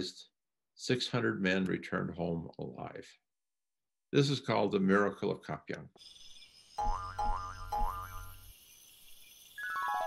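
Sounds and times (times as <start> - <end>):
cartoon spring boing: 6.8 - 8.4.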